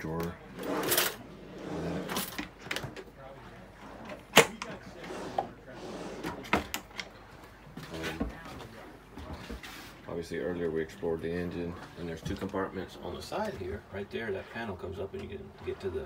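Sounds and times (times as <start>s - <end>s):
wooden drawers opening and shutting: 0.0s - 3.2s, 3.8s - 7.2s.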